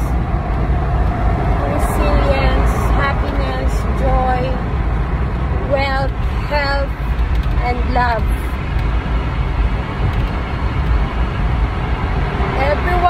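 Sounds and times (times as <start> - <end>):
car driving rumble from inside: 0.0 - 13.0
woman speaking: 1.6 - 4.6, 5.7 - 8.6, 12.6 - 13.0.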